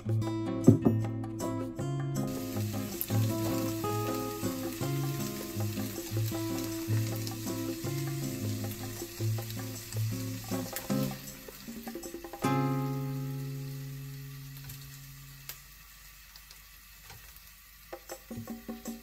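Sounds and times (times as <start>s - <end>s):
light background music: 0.0s - 14.6s
beef sizzling as it fries: 2.2s - 19.0s.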